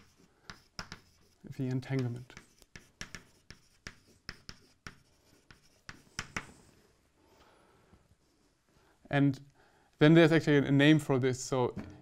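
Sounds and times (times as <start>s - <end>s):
chalk tapping and scratching on blackboard: 0.0s - 6.8s.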